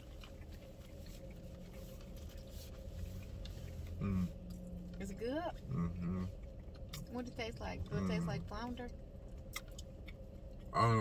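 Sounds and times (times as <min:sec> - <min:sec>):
soft chewing clicks: 0:00.0 - 0:08.1, 0:08.9 - 0:10.8
steady low hum: 0:00.0 - 0:11.0.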